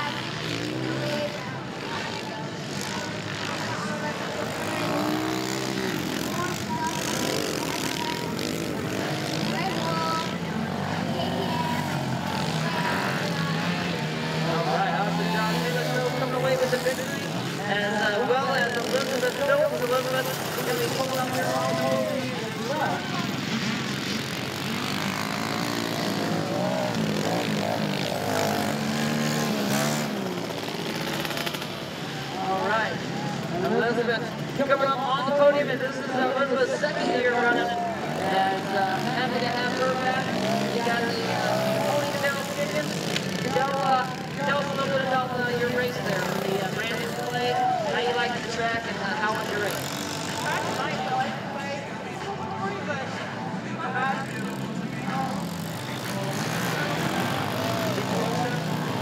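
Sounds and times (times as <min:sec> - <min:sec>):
dirt bike engines revving: 0:00.0 - 0:59.0.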